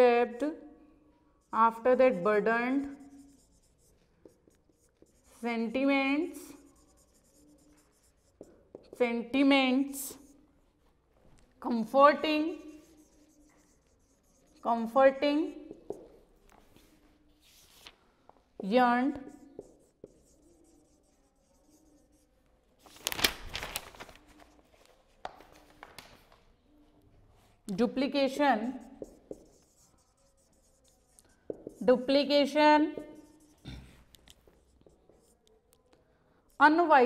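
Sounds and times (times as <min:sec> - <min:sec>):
marker pen scratching on whiteboard: 0:01.3 - 0:17.9, 0:18.6 - 0:22.5, 0:27.4 - 0:37.0.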